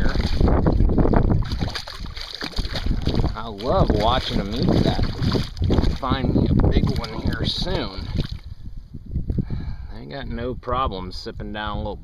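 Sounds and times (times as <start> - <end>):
fish knocking and splashing: 0.0 - 8.5.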